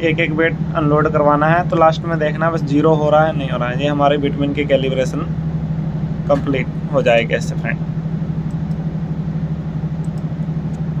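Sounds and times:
fluttering machinery drone: 0:00.0 - 0:11.0.

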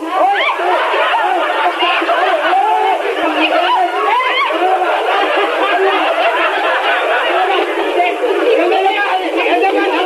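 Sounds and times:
voices shouting over one another: 0:00.0 - 0:10.0.

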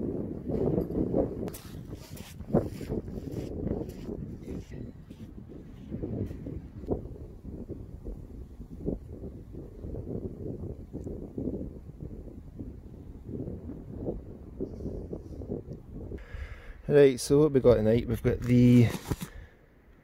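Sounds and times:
wind rumble on microphone: 0:00.0 - 0:16.8.

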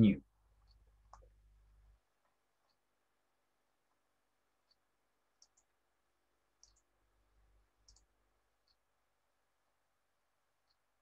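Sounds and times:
computer mouse clicks: 0:05.4 - 0:05.8, 0:06.6 - 0:06.9, 0:07.8 - 0:08.8.

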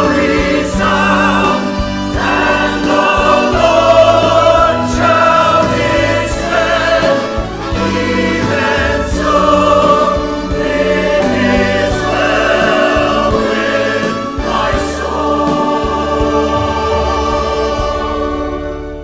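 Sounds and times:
church choir singing: 0:00.0 - 0:19.0.

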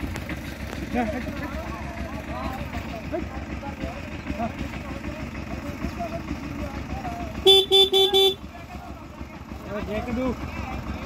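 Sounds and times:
distant voices: 0:00.0 - 0:11.0
vehicle horn beeps: 0:07.4 - 0:08.4.

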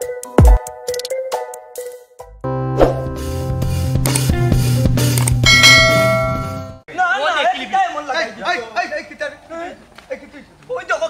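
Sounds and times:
bell chime ding: 0:05.4 - 0:06.8.

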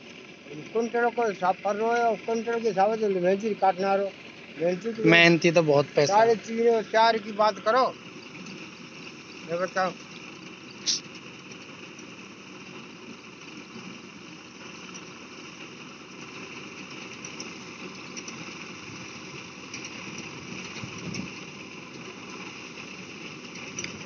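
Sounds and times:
tractor engine running: 0:00.0 - 0:24.0.

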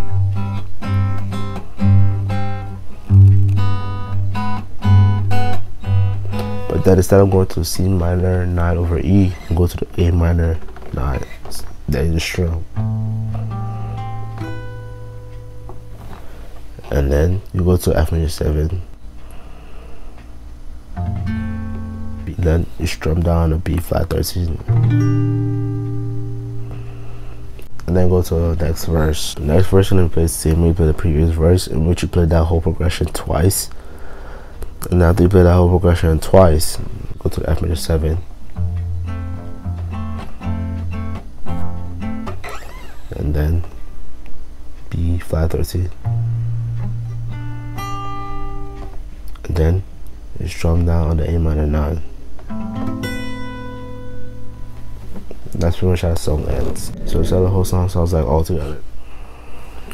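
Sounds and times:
acoustic guitar chord ringing: 0:00.0 - 0:10.1, 0:12.7 - 0:16.5, 0:20.9 - 0:22.4, 0:24.6 - 0:27.6, 0:38.6 - 0:43.2, 0:46.0 - 0:49.0, 0:52.5 - 0:58.8.

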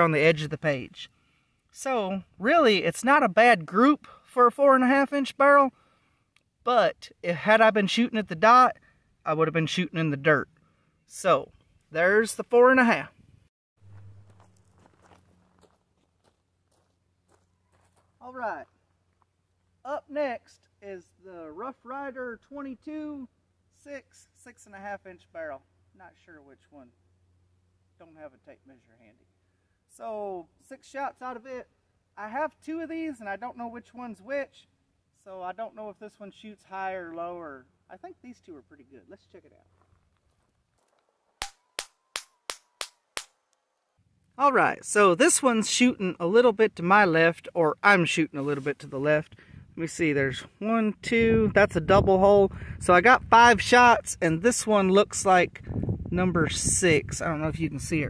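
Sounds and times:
low steady hum: 0:05.7 - 0:40.8
footsteps crunching on gravel: 0:13.8 - 0:19.4, 0:39.6 - 0:41.4.

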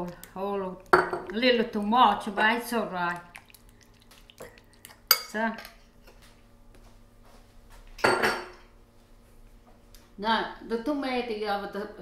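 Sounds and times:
kitchenware clinking: 0:05.1 - 0:05.8, 0:08.0 - 0:08.6.

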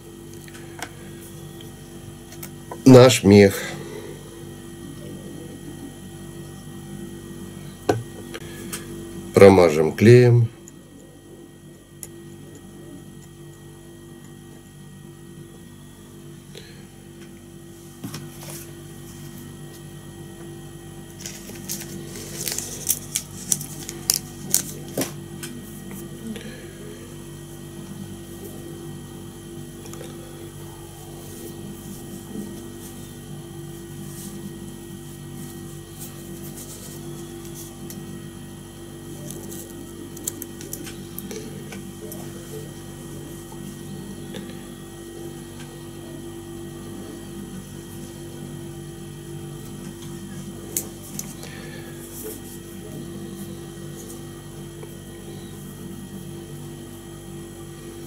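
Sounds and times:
steady tonal hum: 0:00.0 - 0:58.0.

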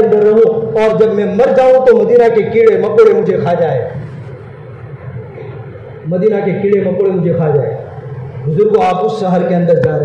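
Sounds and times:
steady hiss and rumble: 0:00.0 - 0:10.0.

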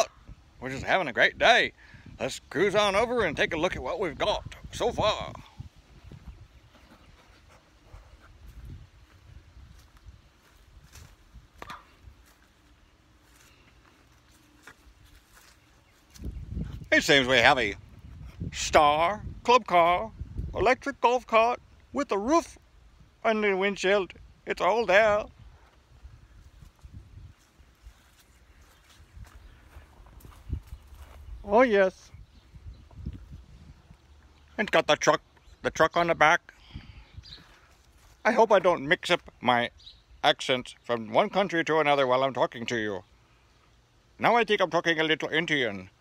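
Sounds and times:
microphone handling rumble: 0:04.4 - 0:12.3, 0:16.1 - 0:19.4, 0:32.1 - 0:34.0
footsteps on grass: 0:05.8 - 0:18.3, 0:25.6 - 0:31.7, 0:37.4 - 0:39.4.

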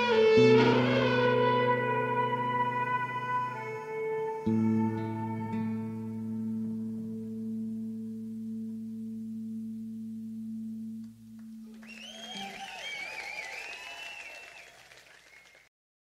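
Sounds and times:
audience cheering and applause: 0:11.7 - 0:15.7.

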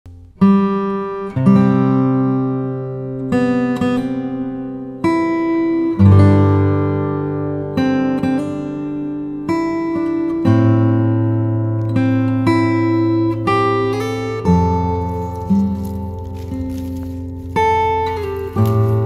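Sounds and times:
acoustic guitar chords: 0:00.1 - 0:19.0.

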